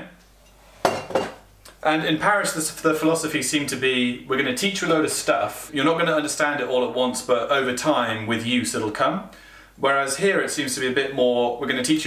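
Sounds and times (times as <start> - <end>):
small kitchenware clink: 0.4 - 1.4
kitchenware knock ringing: 0.9 - 1.4.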